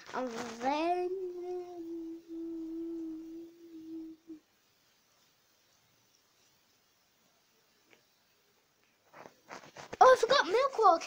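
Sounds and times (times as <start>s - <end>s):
child humming a long note: 1.0s - 4.4s.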